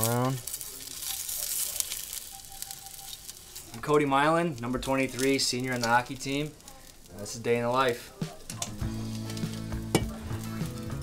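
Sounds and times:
sausages sizzling in a frying pan: 0.0s - 11.0s
spatula turning sausages: 0.0s - 11.0s.

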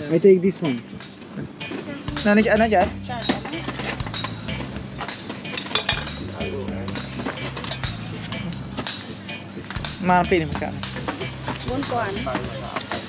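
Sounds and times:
background music: 0.0s - 13.0s
metal tongs clinking on grill: 3.2s - 6.3s, 6.9s - 8.0s.

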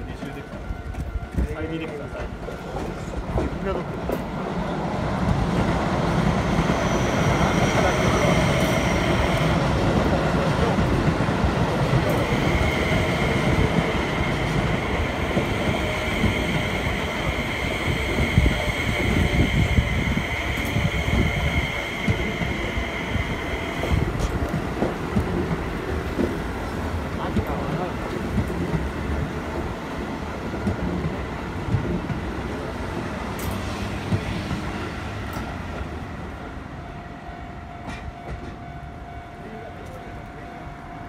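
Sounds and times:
train wheels rumbling on rail: 0.0s - 41.0s
high wheel squeal: 6.4s - 9.6s.

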